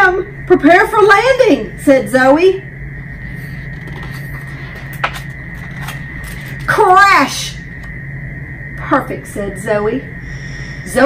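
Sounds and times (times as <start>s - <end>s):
low hum: 0.0s - 11.0s.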